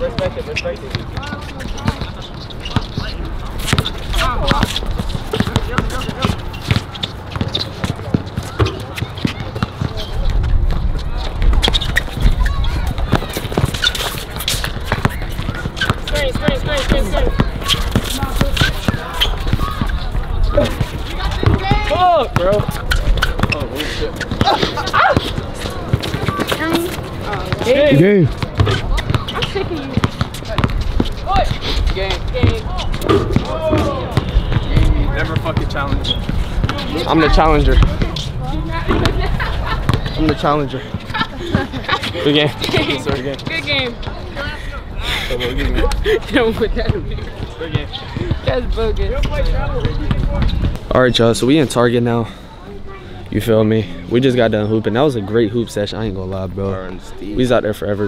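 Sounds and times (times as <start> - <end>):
shoes on court: 0.0 - 44.6, 45.4 - 51.9
voices calling out: 0.0 - 56.2
basketball bouncing: 0.1 - 41.8.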